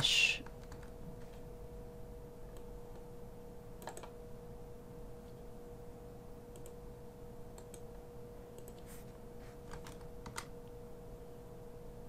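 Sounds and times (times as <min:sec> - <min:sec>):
steady faint hum: 0:00.0 - 0:12.0
keyboard and mouse clicks: 0:03.8 - 0:04.2, 0:06.5 - 0:06.8, 0:07.6 - 0:07.9, 0:08.6 - 0:08.9, 0:09.6 - 0:10.5.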